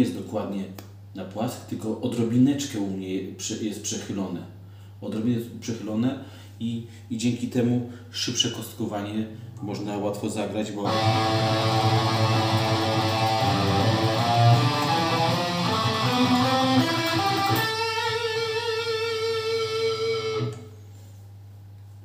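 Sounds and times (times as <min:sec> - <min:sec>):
electric guitar fast picking: 0:10.9 - 0:20.6.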